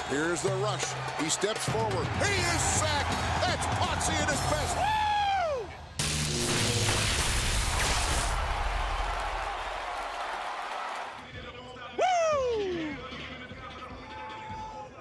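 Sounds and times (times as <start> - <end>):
music: 0.0 - 15.0
man shouting woo: 4.6 - 5.8, 12.0 - 13.0.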